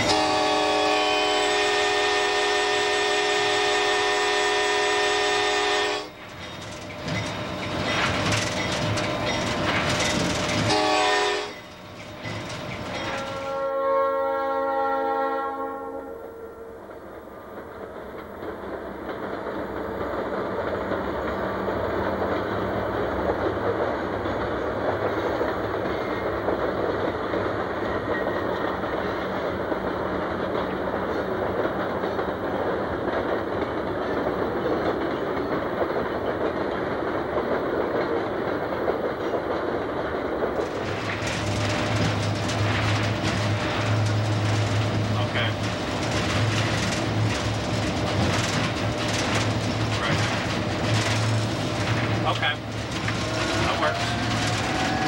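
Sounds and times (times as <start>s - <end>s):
freight train wheels clattering: 0.0s - 13.7s, 16.8s - 55.0s
locomotive engine drone: 40.1s - 55.0s.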